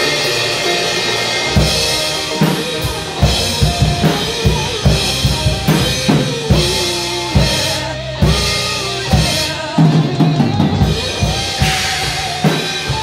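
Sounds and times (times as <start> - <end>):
drum kit hits with cymbals: 0.0 - 13.0
rock band playing: 0.0 - 13.0.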